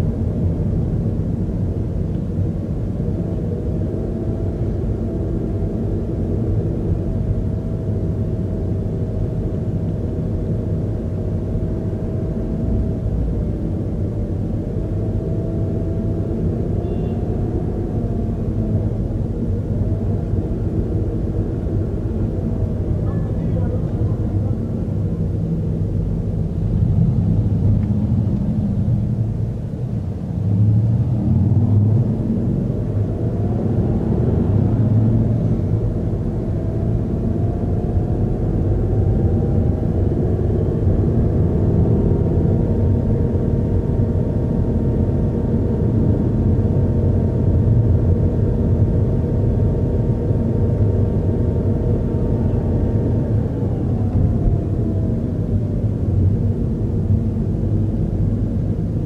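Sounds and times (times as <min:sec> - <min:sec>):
car driving rumble from inside: 0:00.0 - 0:59.0
faint whine: 0:00.0 - 0:59.0.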